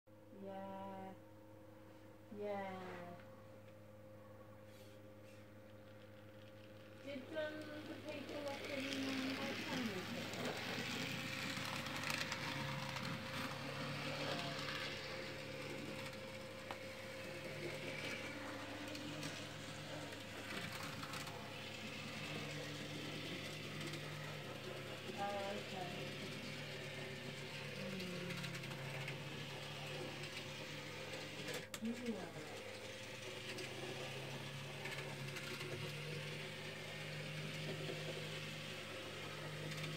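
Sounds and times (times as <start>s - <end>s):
small electric motor whirring: 5.3s - 39.9s
wheels running on rails: 5.7s - 39.9s.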